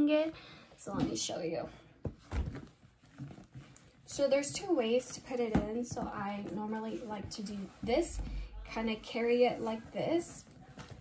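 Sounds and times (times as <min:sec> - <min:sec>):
soft thump: 0:07.9 - 0:08.8.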